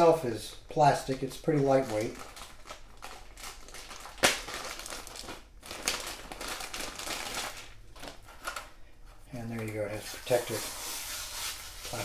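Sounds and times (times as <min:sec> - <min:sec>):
plastic bag crinkling: 0:00.5 - 0:08.8.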